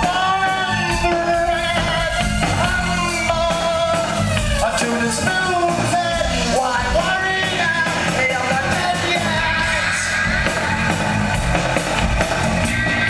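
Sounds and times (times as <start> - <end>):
man singing and yelling: 0.0 - 11.0
rock band playing: 0.0 - 13.0.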